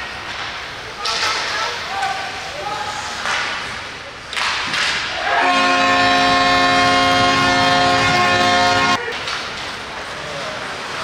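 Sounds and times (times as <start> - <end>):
multi-note horn chord: 5.4 - 9.0.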